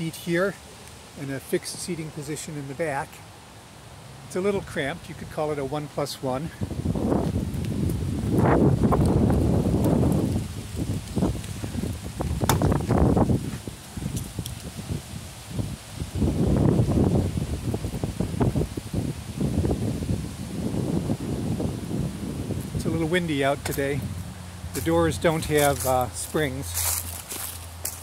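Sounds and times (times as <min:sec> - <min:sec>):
wind buffeting microphone: 0:06.5 - 0:28.0.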